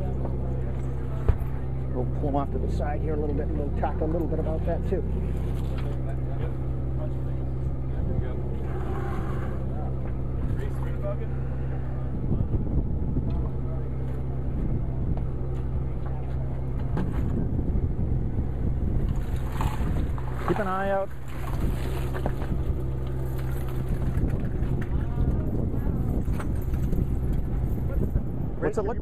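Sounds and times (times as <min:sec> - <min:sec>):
boat engine humming: 0:00.0 - 0:29.0.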